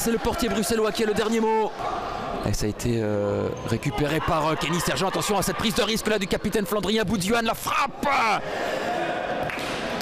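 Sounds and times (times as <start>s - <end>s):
reverberant indoor sports hall noise: 0.0s - 10.0s.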